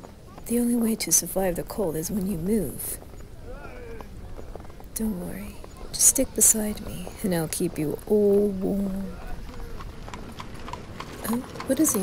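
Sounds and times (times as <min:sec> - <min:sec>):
faint voices: 0:00.0 - 0:10.4
horse hooves clip-clopping: 0:00.0 - 0:12.0.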